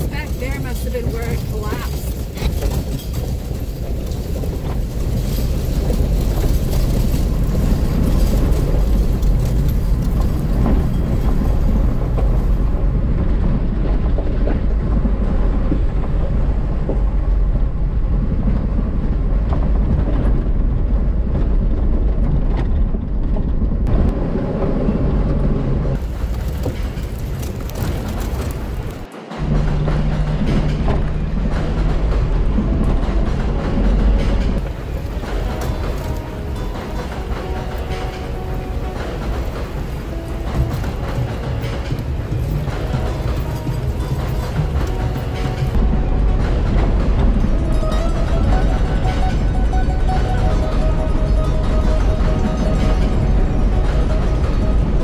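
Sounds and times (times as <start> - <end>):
engine and tyre rumble on gravel: 0.0 - 55.0
music: 29.0 - 55.0.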